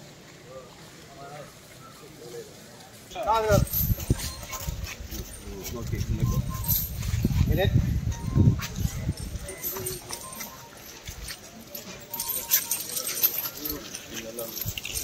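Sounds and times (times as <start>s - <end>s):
people's voices: 0.0s - 15.0s
iron chains clinking: 3.2s - 15.0s.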